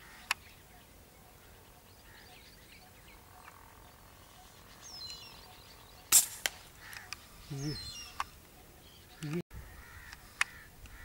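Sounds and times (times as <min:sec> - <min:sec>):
gunshot crack: 0:06.1 - 0:06.7.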